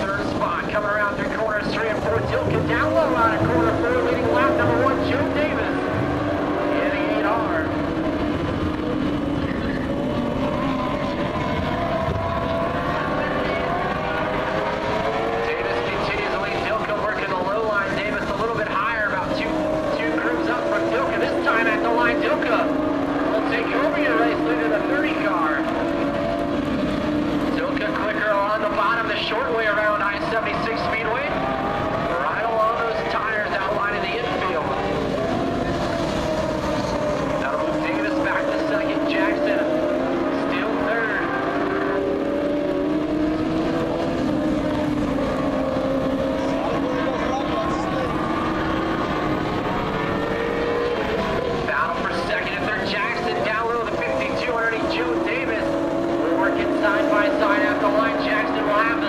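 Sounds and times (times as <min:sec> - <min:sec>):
race car engines revving: 0:00.0 - 0:59.0.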